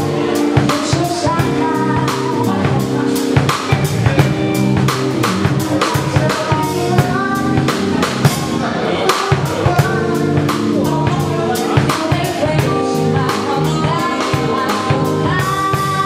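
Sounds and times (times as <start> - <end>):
bass guitar: 0.0 - 16.0
drum kit: 0.0 - 16.0.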